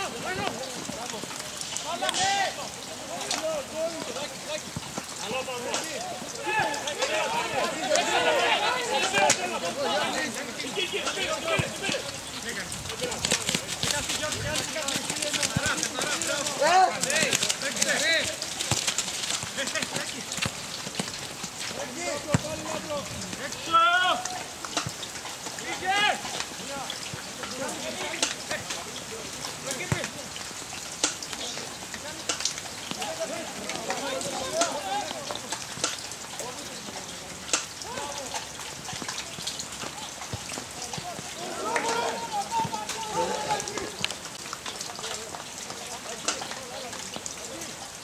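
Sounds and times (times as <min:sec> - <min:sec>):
players shouting calls: 0:00.0 - 0:47.7.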